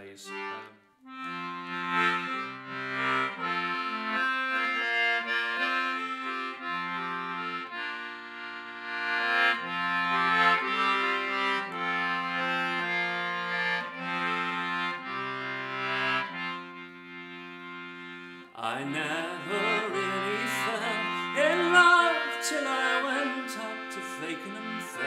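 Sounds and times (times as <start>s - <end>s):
concertina playing a tune: 0.0s - 25.0s.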